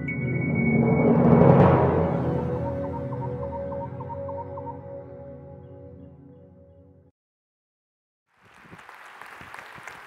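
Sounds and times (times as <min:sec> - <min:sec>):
audience applauding: 0:08.4 - 0:10.0.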